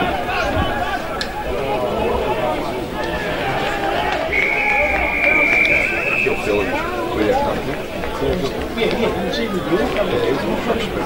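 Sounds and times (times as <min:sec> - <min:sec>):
spectators' voices: 0:00.0 - 0:11.0
whistle long blast: 0:04.3 - 0:06.8.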